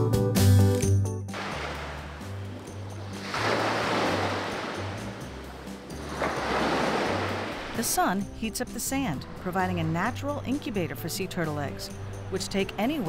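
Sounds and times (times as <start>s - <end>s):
soft background music with bass: 0.0s - 13.0s
surf washing onto sandy beach: 1.4s - 8.1s.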